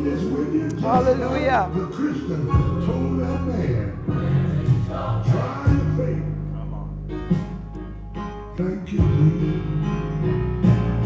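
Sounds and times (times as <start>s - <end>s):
choir singing gospel: 0.0s - 6.4s
steady bass line: 0.0s - 11.0s.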